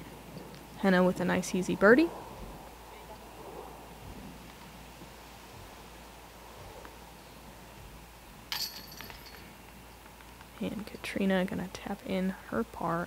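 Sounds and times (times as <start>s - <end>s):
faint outdoor ambience: 0.0s - 13.0s
disc striking metal chains: 8.5s - 9.6s.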